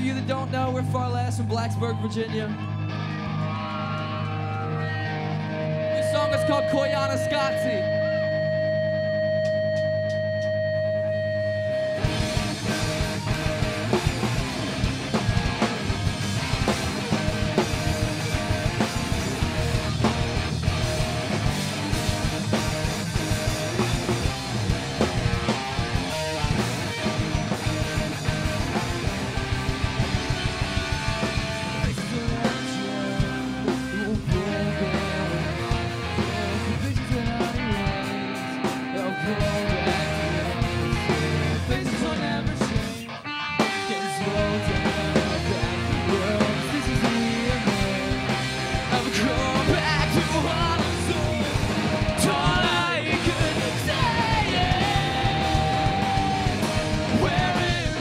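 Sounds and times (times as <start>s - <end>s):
drums: 0.0s - 58.0s
electric guitars: 0.0s - 58.0s
rock band playing: 0.0s - 58.0s
held chord droning: 3.5s - 12.4s.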